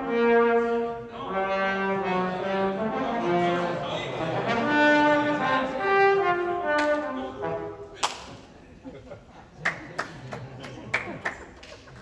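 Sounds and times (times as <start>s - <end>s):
trombone notes: 0.0s - 8.0s
murmur of voices: 0.0s - 12.0s.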